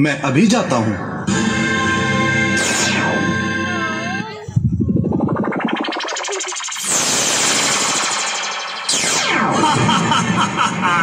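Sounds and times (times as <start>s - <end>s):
downward pitch sweep: 2.1s - 9.6s
electronic rising pulsing tone: 2.5s - 9.7s.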